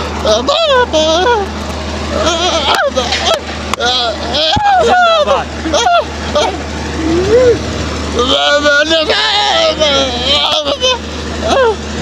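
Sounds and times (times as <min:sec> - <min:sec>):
low hum: 0:00.0 - 0:12.0
man crying out wordlessly: 0:04.5 - 0:07.8.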